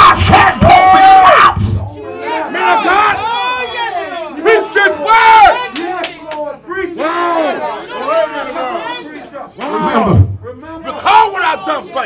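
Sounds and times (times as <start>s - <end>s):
preacher shouting: 0.0s - 10.2s.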